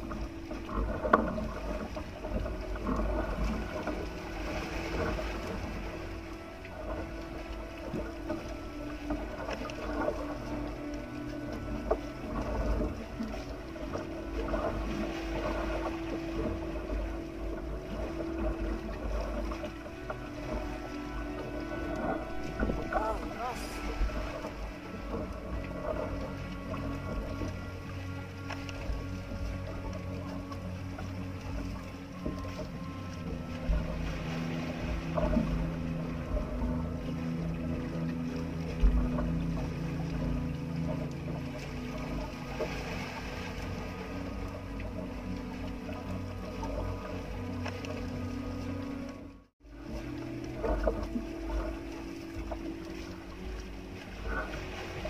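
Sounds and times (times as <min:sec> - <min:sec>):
boat engine running: 0:00.0 - 0:55.0
wind rumbling on microphone: 0:00.0 - 0:55.0.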